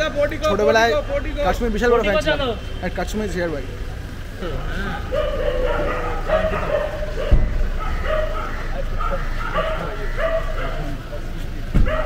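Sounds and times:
dog barking: 0:05.0 - 0:11.1, 0:11.8 - 0:12.0.

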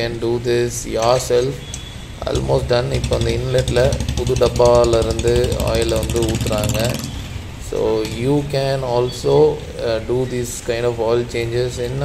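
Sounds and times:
person talking: 0:00.0 - 0:01.6, 0:02.2 - 0:07.0, 0:07.6 - 0:12.0
steady low hum: 0:00.0 - 0:12.0.

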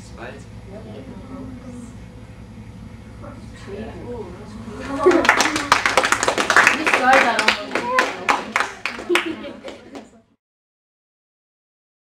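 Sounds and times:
voices: 0:00.0 - 0:10.3
small group clapping: 0:04.8 - 0:10.2.

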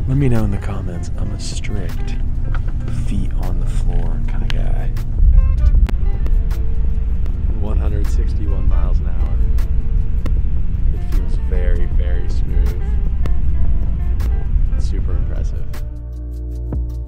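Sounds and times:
train rumble inside cabin: 0:00.0 - 0:15.9.

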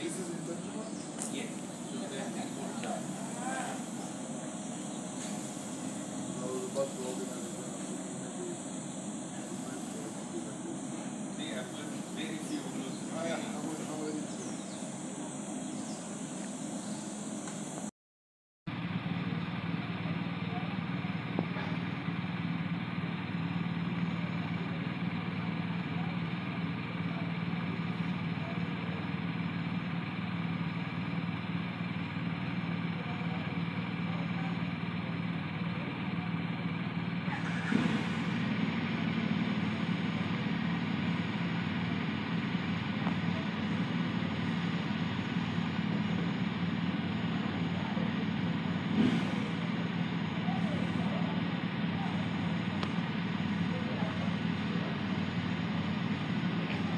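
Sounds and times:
motorcycle engine idling: 0:00.0 - 0:17.9, 0:18.7 - 0:56.9.

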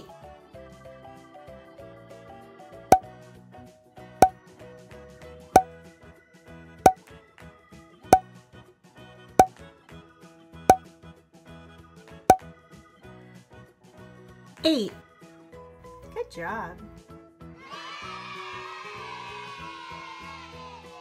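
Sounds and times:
light background music: 0:14.5 - 0:17.4.

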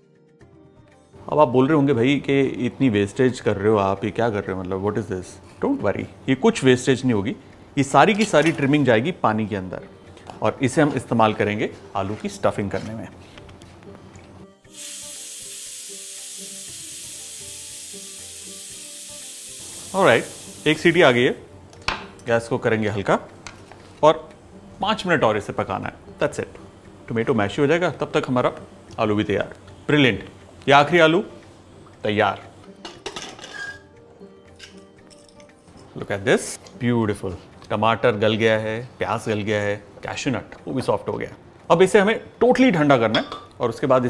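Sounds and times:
soft background music: 0:00.0 - 0:44.0
pressure cooker steam hiss: 0:14.7 - 0:21.4.

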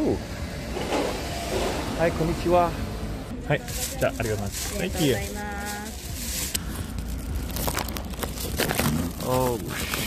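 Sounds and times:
vehicle passing: 0:00.0 - 0:08.1.

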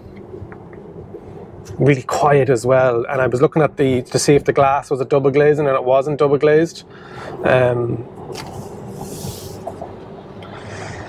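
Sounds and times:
road and tyre noise in cabin: 0:00.0 - 0:11.0
faint hiss: 0:06.9 - 0:11.0.

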